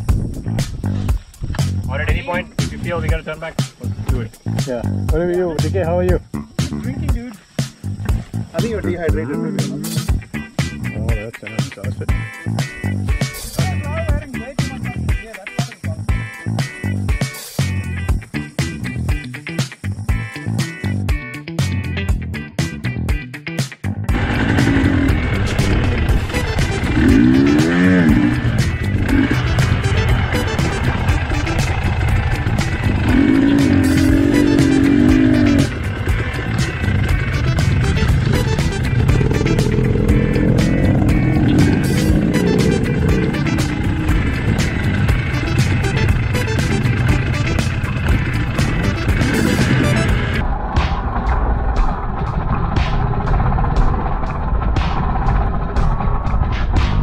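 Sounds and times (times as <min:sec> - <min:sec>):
background music: 0:00.0 - 0:57.0
dirt bike engine revving: 0:24.1 - 0:56.0.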